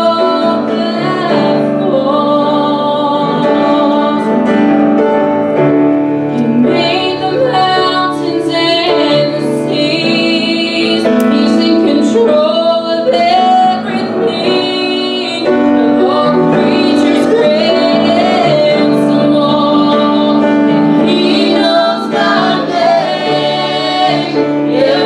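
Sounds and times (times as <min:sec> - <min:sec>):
vocal trio singing: 0:00.0 - 0:04.5, 0:06.3 - 0:25.0
piano accompaniment: 0:00.0 - 0:25.0.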